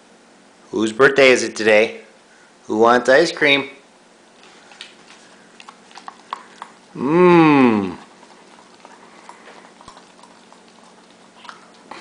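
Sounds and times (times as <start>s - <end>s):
dog licking a metal spoon: 5.5s - 7.0s, 7.9s - 12.0s.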